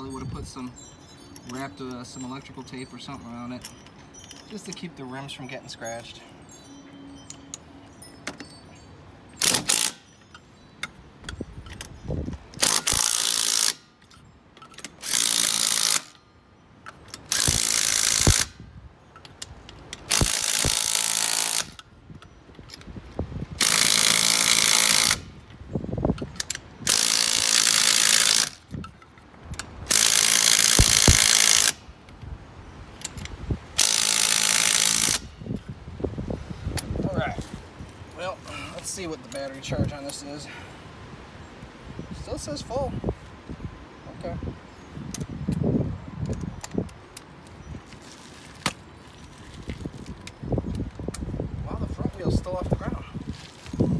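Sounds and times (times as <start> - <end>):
impact driver bursts: 17.3 - 18.5, 23.6 - 25.3, 29.9 - 31.8
small metal clicks: 33.0 - 35.7.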